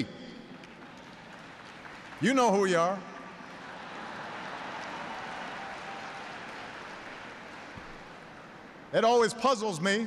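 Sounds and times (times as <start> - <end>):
audience applauding: 0.6 - 8.5.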